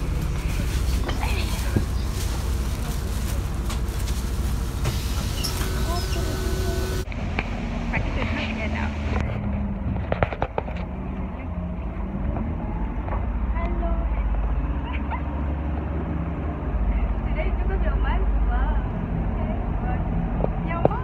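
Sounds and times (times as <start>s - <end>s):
bus engine and road rumble: 0.0s - 21.0s.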